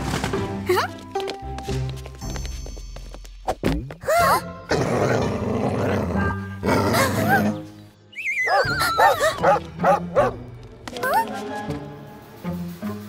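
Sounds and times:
cartoon dog barking: 0:08.5 - 0:10.4.

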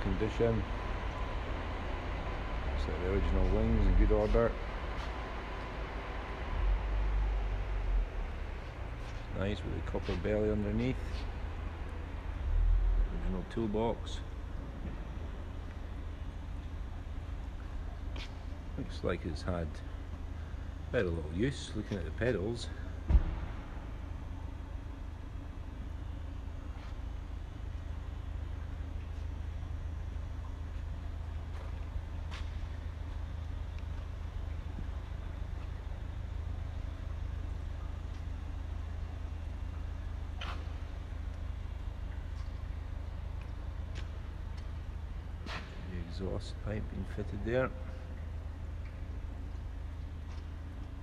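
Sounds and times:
low rumble: 0:00.0 - 0:51.0
sharp thump: 0:23.1 - 0:23.7.

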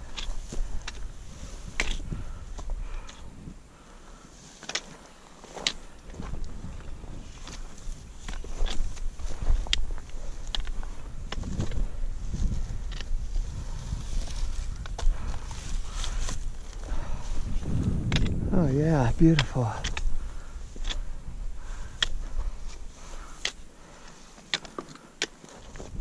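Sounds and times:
trekking pole clicking on stones: 0:00.0 - 0:03.4, 0:04.4 - 0:26.0
footsteps on rocky ground: 0:00.0 - 0:26.0.

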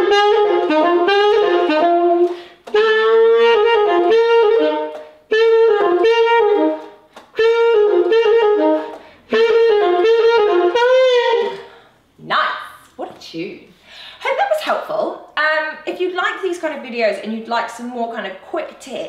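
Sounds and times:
alto saxophone jazzy tune: 0:00.0 - 0:11.8.

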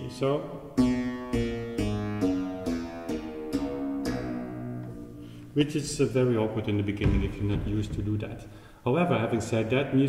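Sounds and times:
clavichord playing low notes: 0:00.7 - 0:08.4.

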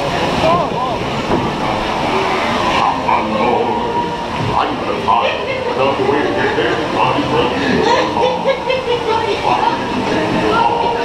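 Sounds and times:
indistinct voices: 0:00.0 - 0:11.0
rushing water noise: 0:00.0 - 0:11.0.

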